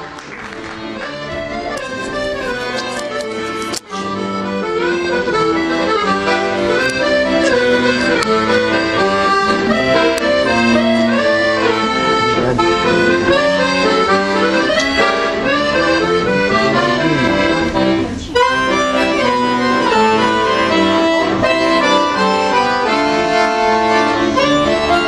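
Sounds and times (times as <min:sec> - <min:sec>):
accordion playing a musette waltz: 0:00.0 - 0:25.0.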